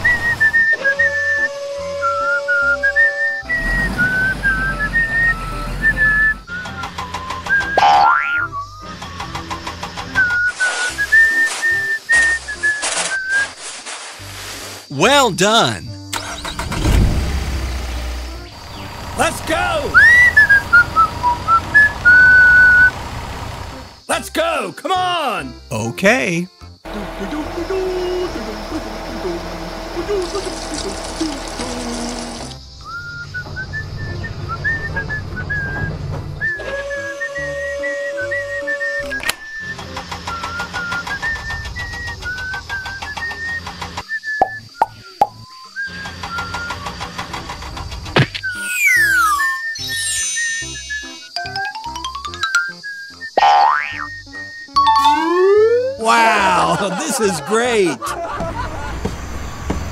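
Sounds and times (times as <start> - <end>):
playful children's music: 6.4 - 12.7, 14.9 - 16.7, 19.2 - 20.0, 23.7 - 29.4, 48.4 - 58.2
cartoon boings: 7.8 - 8.5, 53.4 - 54.2, 54.8 - 56.2
cartoon pitch glides: 53.4 - 54.1, 54.8 - 56.8.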